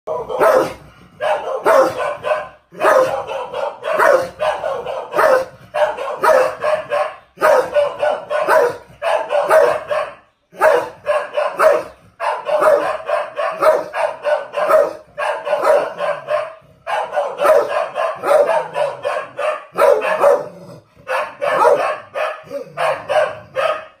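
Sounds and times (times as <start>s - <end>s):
dog barking: 0.1s - 24.0s.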